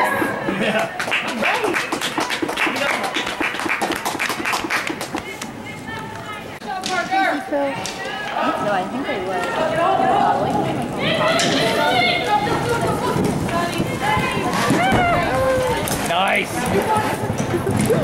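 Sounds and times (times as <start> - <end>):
horses galloping on dirt: 0.0 - 6.0, 9.2 - 18.0.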